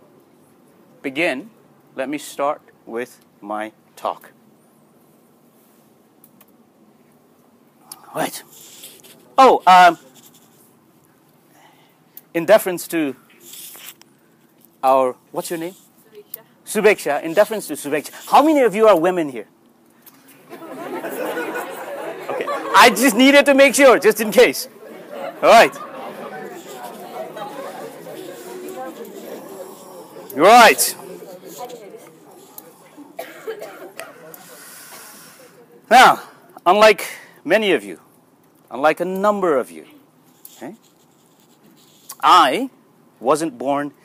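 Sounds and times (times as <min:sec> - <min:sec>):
man coughing: 0:32.7 - 0:34.3.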